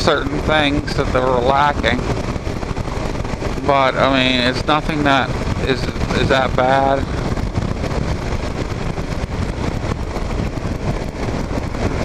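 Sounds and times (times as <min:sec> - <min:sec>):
motorcycle engine cruising: 0:00.0 - 0:12.0
wind rush on microphone: 0:00.0 - 0:12.0.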